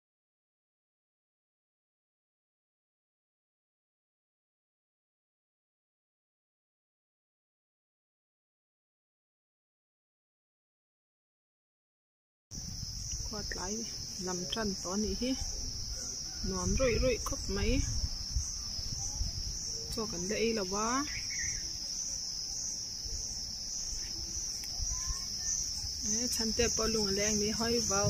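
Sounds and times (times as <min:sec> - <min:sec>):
high-pitched insect chorus: 0:12.6 - 0:28.0.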